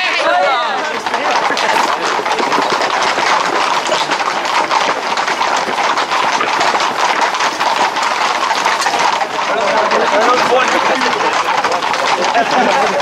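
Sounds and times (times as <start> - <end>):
crowd noise: 0.0 - 13.0
hooves clattering on paved road: 0.0 - 13.0.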